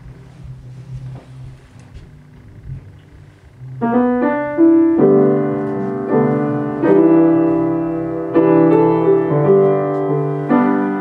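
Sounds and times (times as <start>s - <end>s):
grand piano chords: 0.0s - 11.0s.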